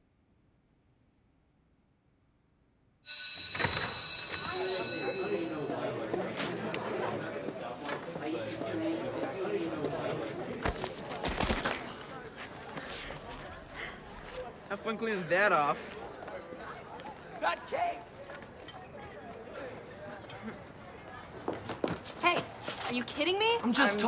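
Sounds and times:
electric school bell ringing: 3.0s - 5.8s
students chattering: 3.1s - 24.0s.

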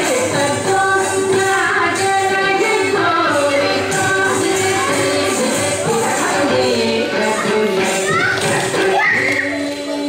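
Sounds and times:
dance music: 0.0s - 10.0s
children calling out: 7.2s - 9.9s.

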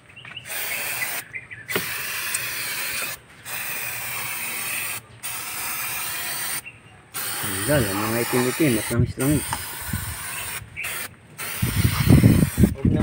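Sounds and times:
aerosol spray hissing: 0.5s - 6.6s, 7.2s - 12.8s.

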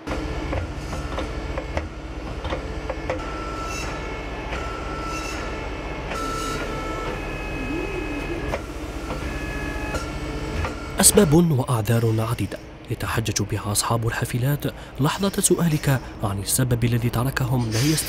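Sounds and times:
short high-pitched tones: 6.2s - 8.6s.

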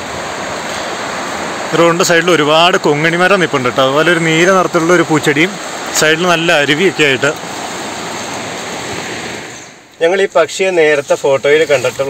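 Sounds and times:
stream running over rocks: 0.0s - 12.0s.

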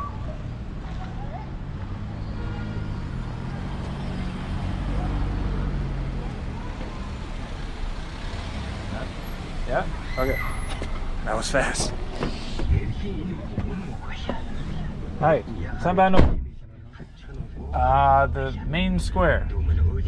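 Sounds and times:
street traffic rumble: 0.0s - 20.0s
car driving up and stopping: 3.5s - 20.0s.

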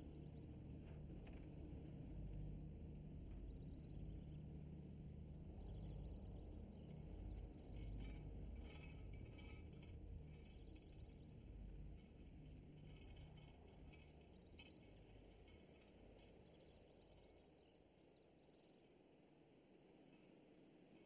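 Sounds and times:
faint crickets chirring: 0.0s - 21.0s.

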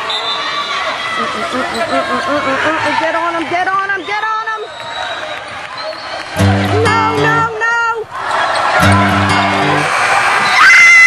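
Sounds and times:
people's voices: 0.0s - 9.9s.

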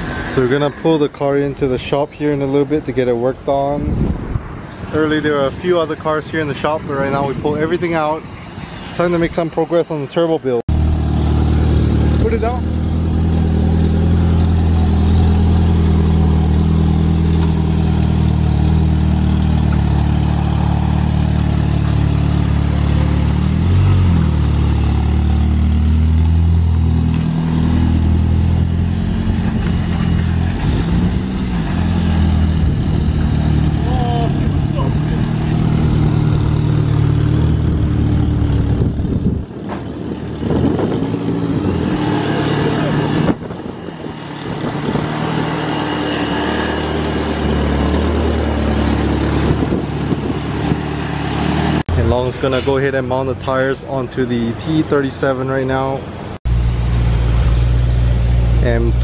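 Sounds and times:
car engine idling: 51.9s - 59.0s.

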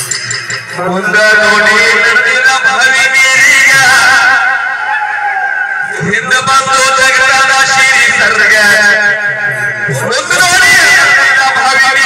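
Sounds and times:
low percussion: 0.0s - 2.8s, 5.8s - 11.7s.

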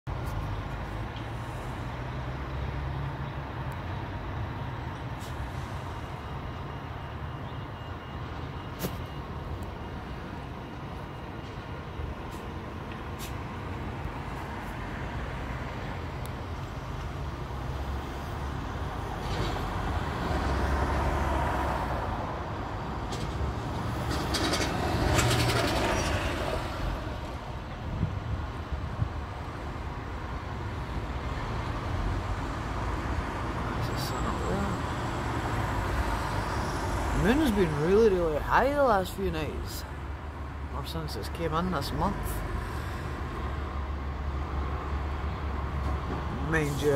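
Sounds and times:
city traffic rumble: 0.1s - 46.9s
loud vehicles passing: 0.1s - 46.9s.

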